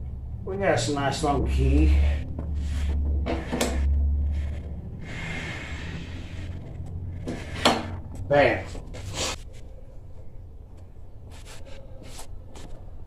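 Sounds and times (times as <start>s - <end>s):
metal scraping and clunking: 1.1s - 9.4s.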